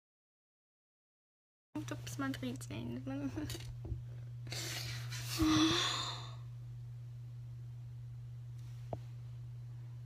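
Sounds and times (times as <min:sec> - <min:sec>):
steady low hum: 0:01.8 - 0:10.0
girl's breathy sigh: 0:05.3 - 0:06.4.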